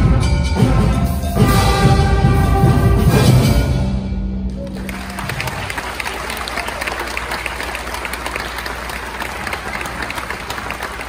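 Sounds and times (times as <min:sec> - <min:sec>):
audience applauding: 0:04.5 - 0:11.0.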